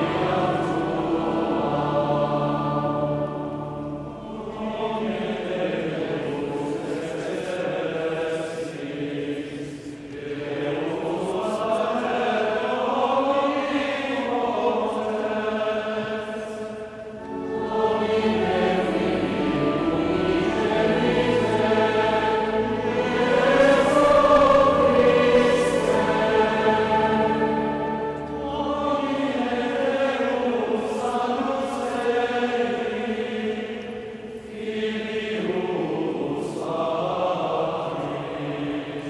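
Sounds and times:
youth choir singing: 0.0 - 39.0.

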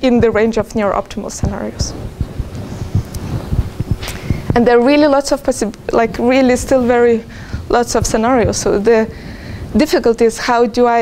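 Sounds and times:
microphone thumps and rumble: 0.0 - 11.0.

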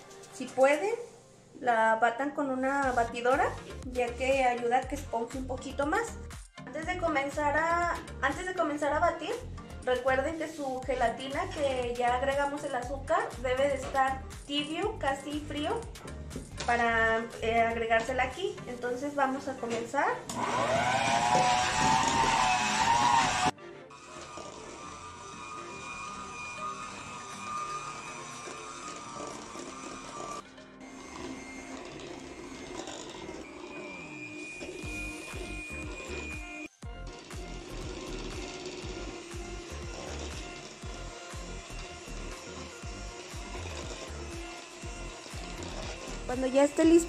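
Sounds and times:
background music: 0.0 - 47.0
electric hand mixer whirring: 7.6 - 47.0.

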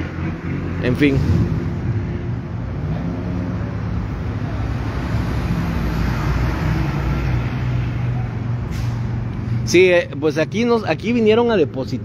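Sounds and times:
road noise: 0.0 - 12.0
vehicle engine hum: 0.0 - 12.0.

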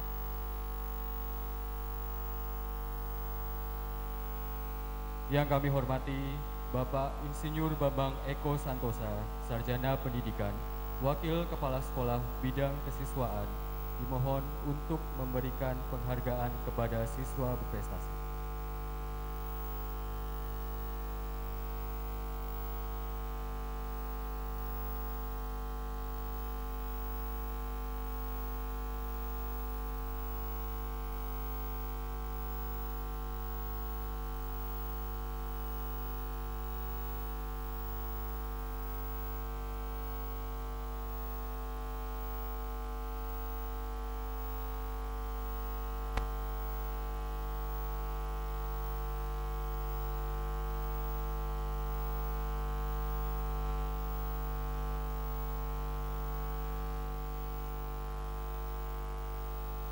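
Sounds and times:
electrical mains hum: 0.0 - 59.9.

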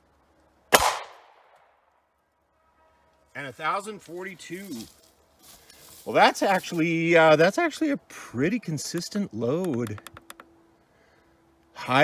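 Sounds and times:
pistol shot: 0.7 - 1.6.

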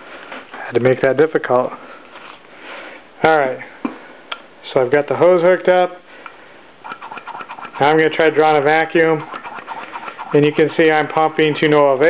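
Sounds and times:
man talking: 0.6 - 1.8, 7.8 - 9.3, 10.3 - 12.0.

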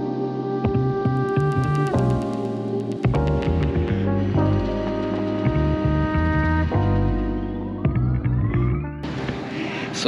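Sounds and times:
electronic music with rising sweep: 0.0 - 9.5
hall ambience hiss: 9.2 - 10.0.

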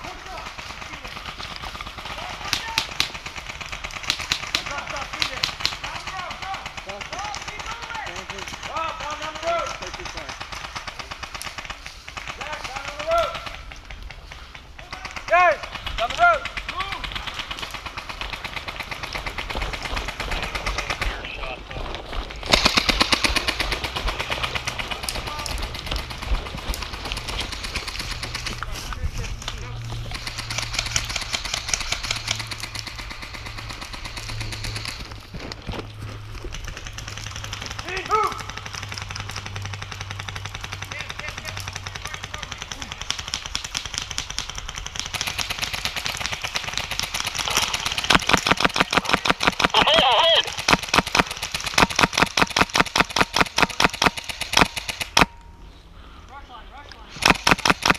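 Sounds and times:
airsoft guns firing in bursts: 0.0 - 35.3, 36.2 - 55.4, 57.2 - 57.9
faint voices: 49.0 - 50.6.

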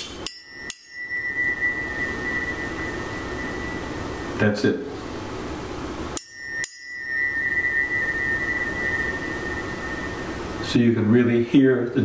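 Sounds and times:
tuning forks ringing: 0.0 - 4.6, 6.1 - 10.8.

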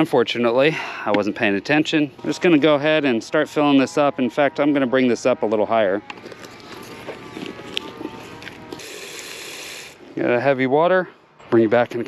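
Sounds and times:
plastic bag crinkling: 6.2 - 8.8
hose nozzle spraying water: 8.7 - 10.0.

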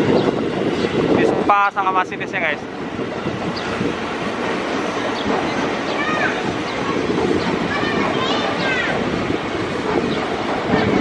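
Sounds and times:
train wheels rolling on track: 0.0 - 11.0.

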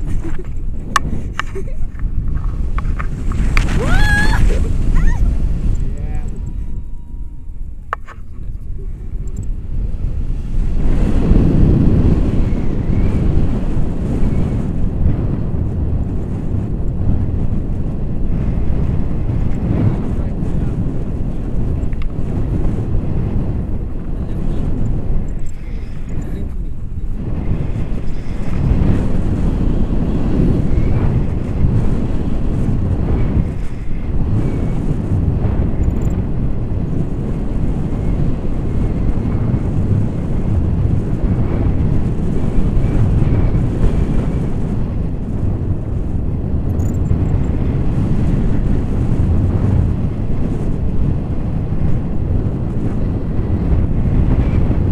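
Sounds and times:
wind rumbling on microphone: 0.0 - 54.9.

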